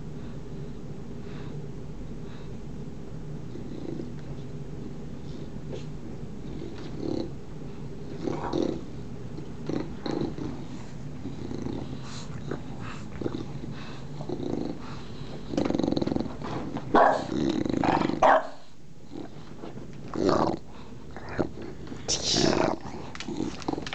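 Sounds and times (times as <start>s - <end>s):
dogs growling: 3.4s - 23.9s.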